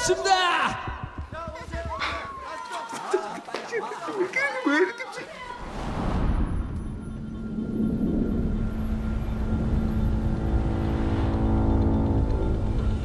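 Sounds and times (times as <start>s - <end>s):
sustained drone chord: 7.0s - 13.0s.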